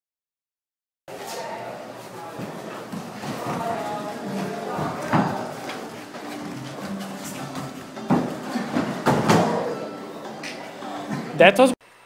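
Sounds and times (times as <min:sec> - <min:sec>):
voices: 0:01.1 - 0:11.8
scuffling on gym mats: 0:02.2 - 0:09.8
bodies thudding onto mats: 0:02.4 - 0:09.8.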